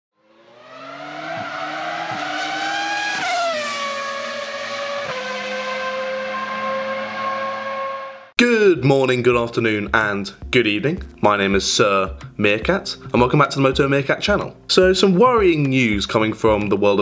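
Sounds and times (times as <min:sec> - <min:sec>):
vehicle engine rising in pitch: 0:00.2 - 0:08.3.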